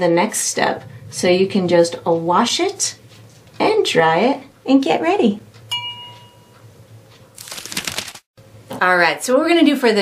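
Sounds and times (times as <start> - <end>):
light ringing clink: 5.7 - 6.5
crinkling rustle: 7.3 - 8.3.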